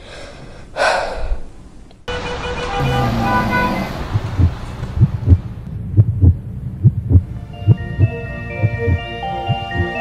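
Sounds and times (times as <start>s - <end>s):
traffic noise: 0.0s - 10.0s
car horn: 2.1s - 4.1s
heartbeat thumps: 4.0s - 10.0s.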